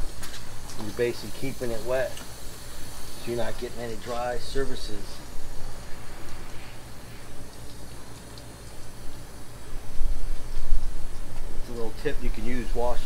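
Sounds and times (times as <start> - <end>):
hose spraying water on car: 0.0 - 13.0.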